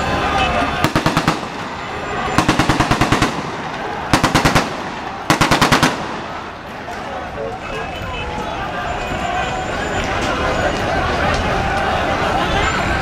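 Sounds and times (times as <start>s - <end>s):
automatic gunfire bursts: 0.8s - 1.6s, 2.4s - 6.4s.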